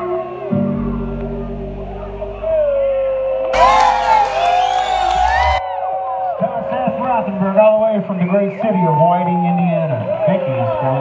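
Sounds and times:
live band sustained note: 0:03.6 - 0:05.6
audience cheering and whooping: 0:03.6 - 0:06.2.

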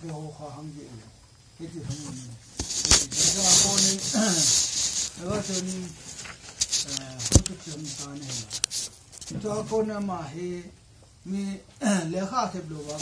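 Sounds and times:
loud hiss: 0:00.0 - 0:11.4, 0:12.0 - 0:13.0
man speaking: 0:03.0 - 0:04.6, 0:05.2 - 0:06.0, 0:06.8 - 0:08.5, 0:11.3 - 0:13.0.

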